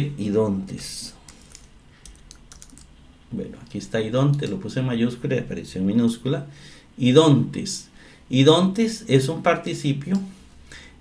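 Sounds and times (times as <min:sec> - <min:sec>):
keyboard key clicks: 0:01.5 - 0:02.9.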